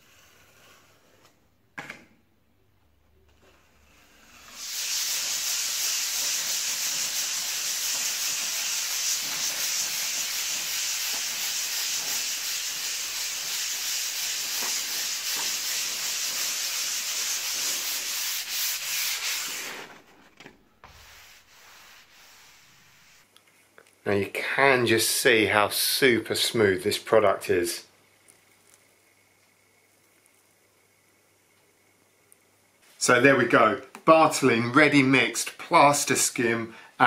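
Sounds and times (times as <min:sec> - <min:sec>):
sanding sponge rasping on plaster: 0:03.9 - 0:20.1, 0:20.8 - 0:23.3.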